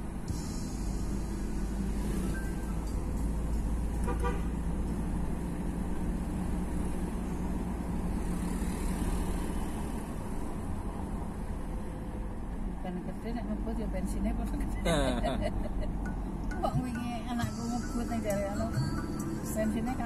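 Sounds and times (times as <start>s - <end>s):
car engine and road rumble: 0.0s - 20.0s
vehicle horn toot: 4.0s - 4.6s.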